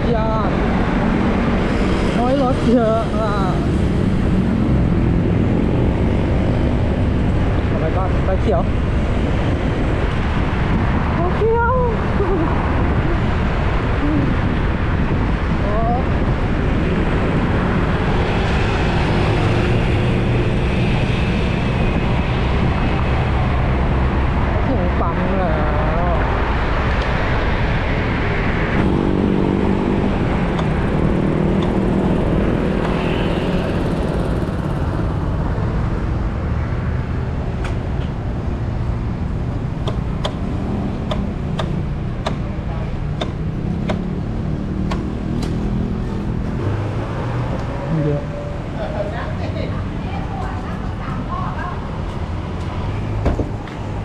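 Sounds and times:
passing cars: 0.0s - 54.0s
wind and road noise: 0.0s - 54.0s.

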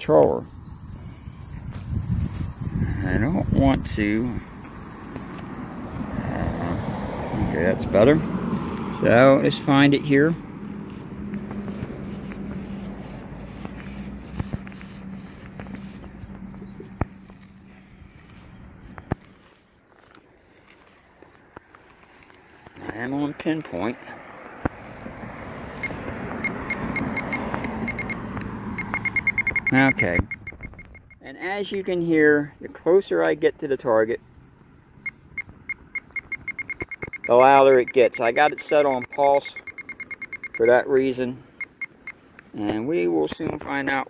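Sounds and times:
steady rushing noise: 1.0s - 19.3s
short high beeps: 25.8s - 28.2s, 28.8s - 31.2s, 35.0s - 40.9s.

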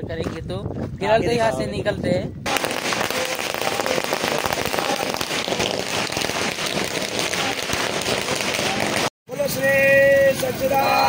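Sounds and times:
firecrackers crackling: 2.5s - 11.0s.

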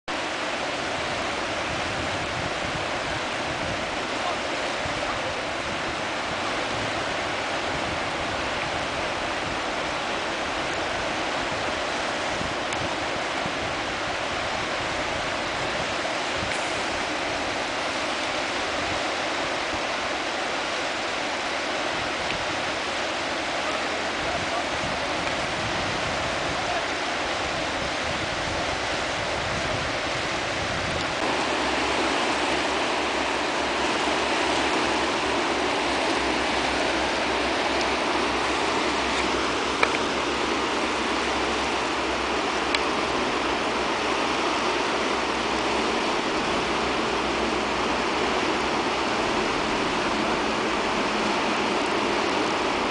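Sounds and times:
water rushing through dam gates: 0.1s - 52.9s.

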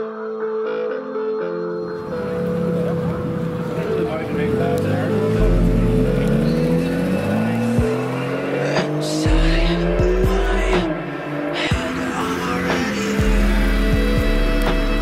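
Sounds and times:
car engine accelerating hard: 2.0s - 15.0s.

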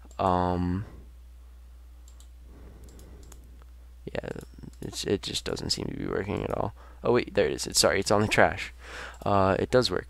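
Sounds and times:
low steady hum: 0.0s - 10.0s
computer mouse clicks: 2.0s - 3.7s.

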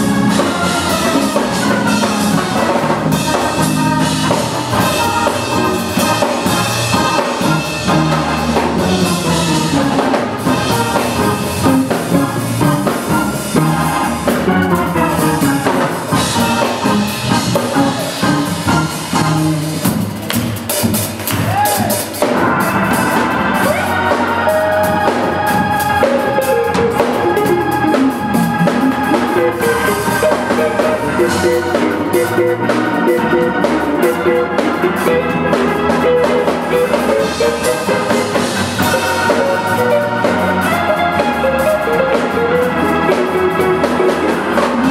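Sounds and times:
drum kit with cymbals: 0.0s - 44.9s
keyboards: 0.0s - 44.9s
electric guitar: 22.2s - 44.9s.

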